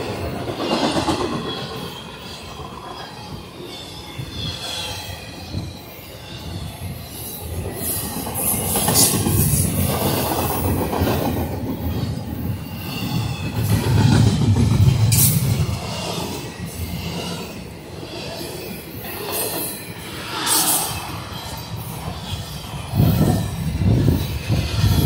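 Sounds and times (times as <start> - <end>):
train wheels rumbling on rails: 0.0 - 25.0.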